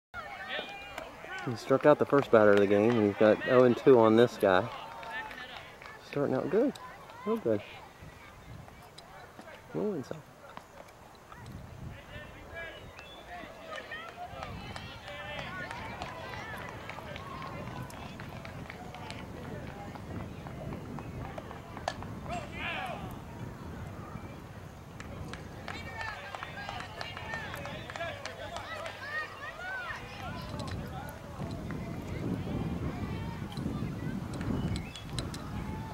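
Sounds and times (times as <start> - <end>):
distant voices calling and chattering: 0.2 - 35.9.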